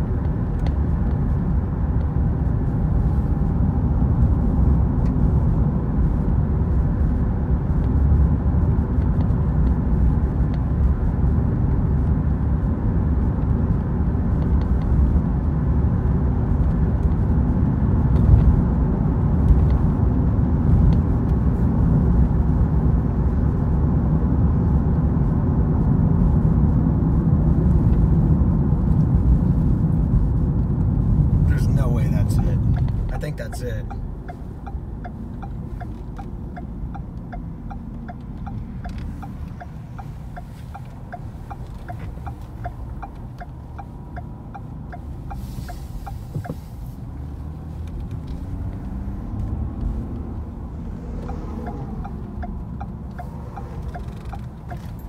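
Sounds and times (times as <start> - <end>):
car tyres and engine rumble: 0.0 - 55.0.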